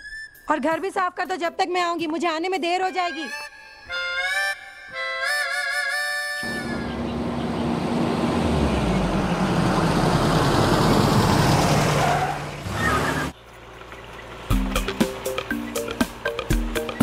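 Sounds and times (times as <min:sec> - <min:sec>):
vehicle driving by: 0:06.4 - 0:15.5.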